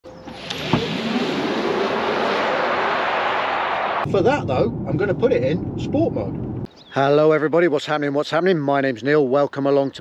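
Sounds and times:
electric car accelerating: 0:00.1 - 0:04.1.

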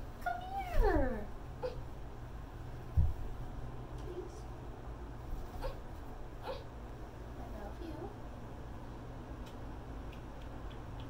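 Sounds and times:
toddler whining: 0:06.4 - 0:06.7.

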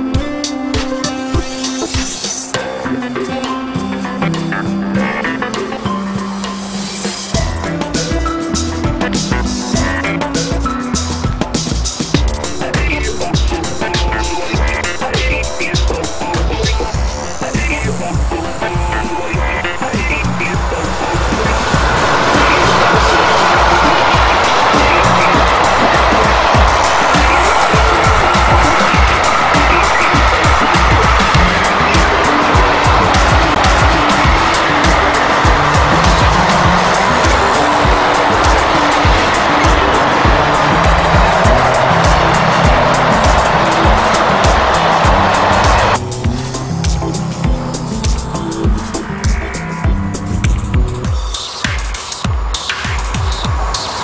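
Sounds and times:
background music: 0:00.0 - 0:54.0
freight train rolling on rails: 0:12.2 - 0:46.0.

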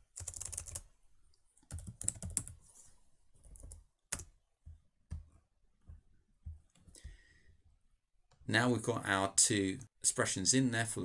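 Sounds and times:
keyboard typing: 0:00.0 - 0:00.9, 0:01.6 - 0:02.6, 0:03.4 - 0:05.4.

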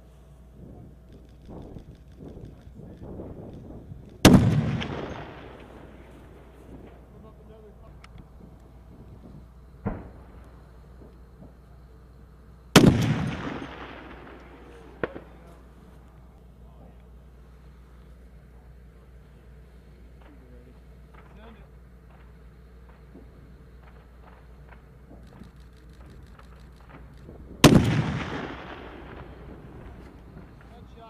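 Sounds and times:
rifle shots echoing: 0:04.1 - 0:07.5, 0:09.8 - 0:11.4, 0:12.7 - 0:16.0, 0:22.0 - 0:31.0
faint sharp cracks: 0:12.8 - 0:17.1, 0:20.1 - 0:30.9.

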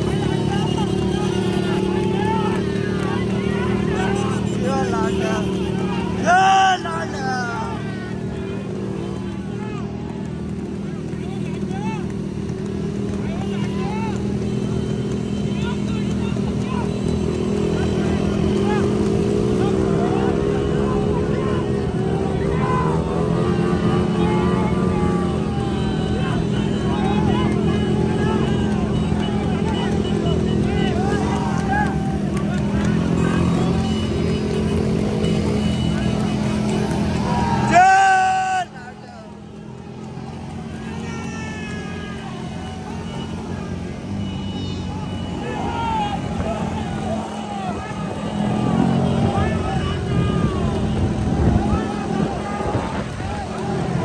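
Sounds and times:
men shouting and cheering: 0:00.0 - 0:54.0
motorcycle engines running: 0:00.0 - 0:54.0.

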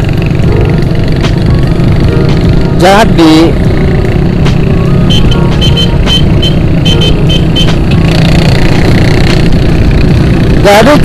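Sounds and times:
motorcycle engine running: 0:00.0 - 0:11.0
road and wind noise: 0:00.0 - 0:11.0
short high beeps: 0:05.0 - 0:07.8.

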